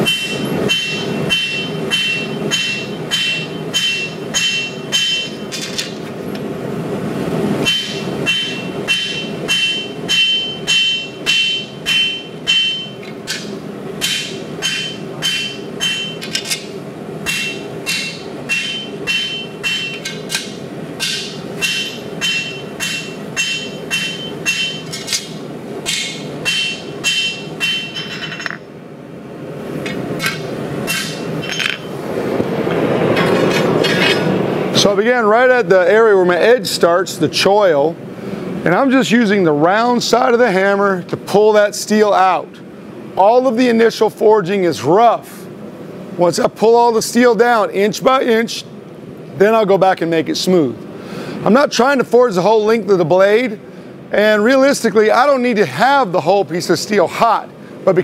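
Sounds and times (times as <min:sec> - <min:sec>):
hammer striking steel on anvil: 0:00.0 - 0:05.8, 0:07.6 - 0:28.6, 0:29.9 - 0:31.9.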